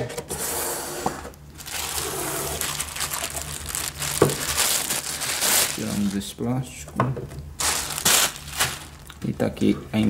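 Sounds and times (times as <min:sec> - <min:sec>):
plastic wrap and cardboard rustling: 0:01.6 - 0:06.4, 0:07.6 - 0:09.6.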